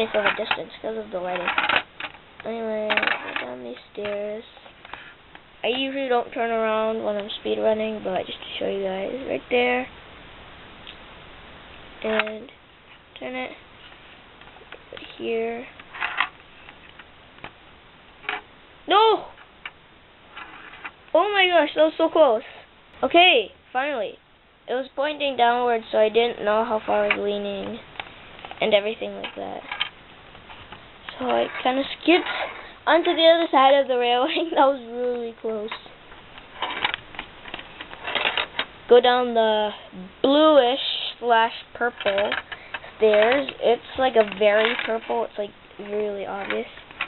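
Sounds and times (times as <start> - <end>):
metal ball rolling in plastic maze: 0.0 - 2.2, 2.8 - 4.2, 15.8 - 16.4, 20.3 - 21.0.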